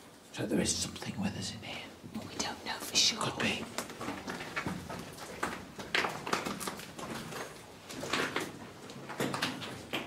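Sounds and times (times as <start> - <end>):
people whispering: 1.1 - 3.7.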